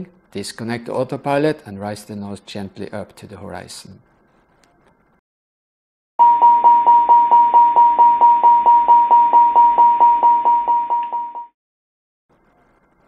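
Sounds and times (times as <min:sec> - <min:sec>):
repeating warning chime: 0:06.2 - 0:11.5.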